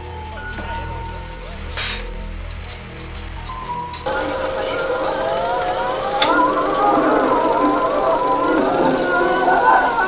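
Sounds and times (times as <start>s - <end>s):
music playing: 0.0s - 10.0s
film projector clattering: 3.9s - 10.0s.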